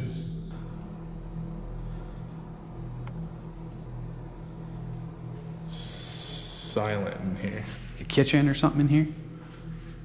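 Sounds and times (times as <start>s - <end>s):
low electrical hum: 0.5s - 7.9s
faint tick: 3.0s - 3.2s.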